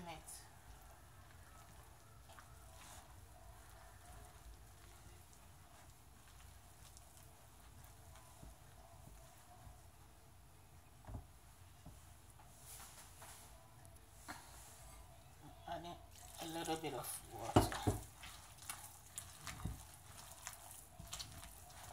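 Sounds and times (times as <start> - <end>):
hand mixing flour in glass bowl: 0.0 - 13.7, 16.0 - 21.9.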